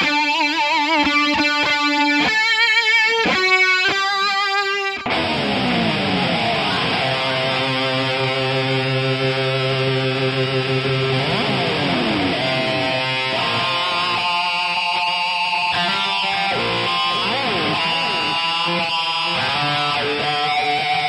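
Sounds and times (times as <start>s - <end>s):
electric guitar lead line: 0.0s - 21.0s.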